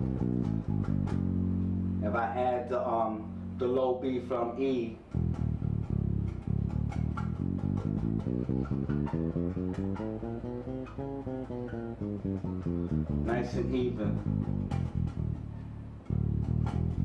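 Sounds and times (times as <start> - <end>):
electric bass plucked notes: 0.0 - 17.0.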